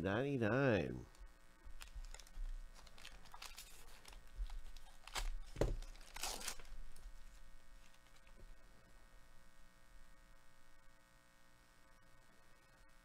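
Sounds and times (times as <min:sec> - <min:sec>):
foil wrapper crinkling and tearing: 0:01.7 - 0:08.4.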